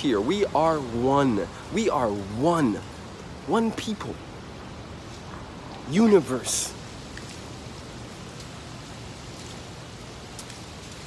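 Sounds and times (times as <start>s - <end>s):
even hiss: 0.0s - 11.0s.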